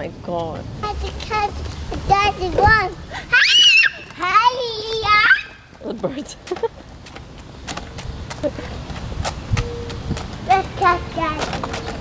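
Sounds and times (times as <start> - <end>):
footsteps on concrete: 0.0 - 12.0.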